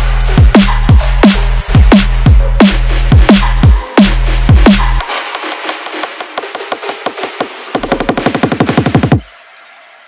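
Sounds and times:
deep bass: 0.0 - 5.0
electronic drum roll: 0.3 - 9.6.

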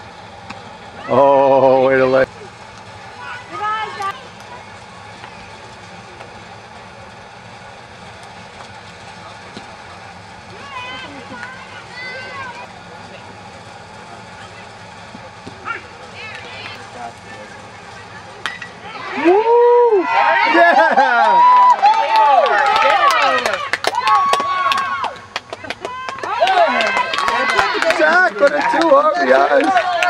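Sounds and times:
outdoor background noise: 0.0 - 30.0
spectators calling out: 0.8 - 30.0
bat hitting ball: 18.4 - 19.0.

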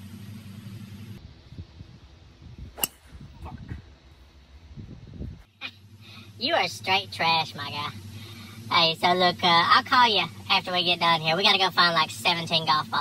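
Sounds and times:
low steady hum: 0.0 - 13.0
golf club hitting ball: 2.8 - 3.1.

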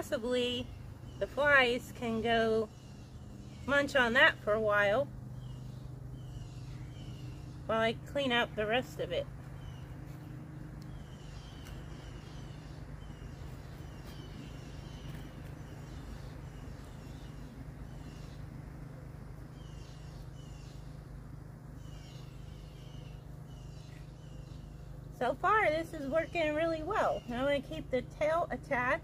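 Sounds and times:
bird chirping: 0.0 - 28.1
steady low hum: 0.0 - 29.0.

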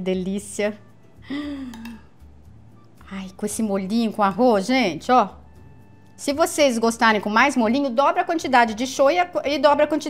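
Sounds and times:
woman's breathy sound of delight: 1.3 - 2.0
metal spoon clicking on plate: 1.7 - 2.0.

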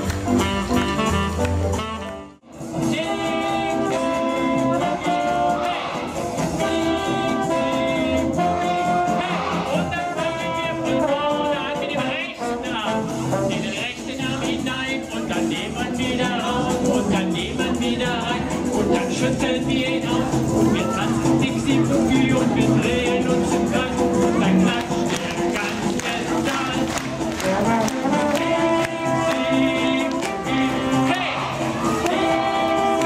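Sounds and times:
audience clapping along: 0.0 - 2.4, 24.6 - 33.0
jazz band playing: 0.0 - 33.0.

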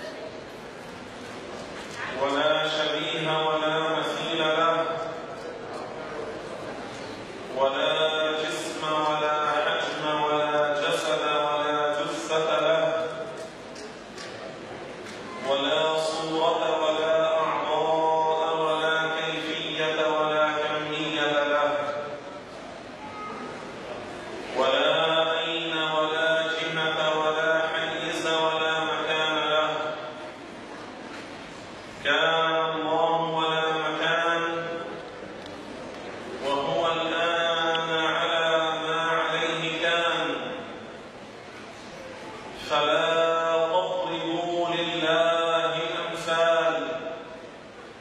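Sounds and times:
man chanting melodically: 2.0 - 5.4, 7.5 - 13.5, 15.3 - 22.4, 24.5 - 30.3, 32.0 - 35.0, 36.4 - 40.8, 42.6 - 47.3.

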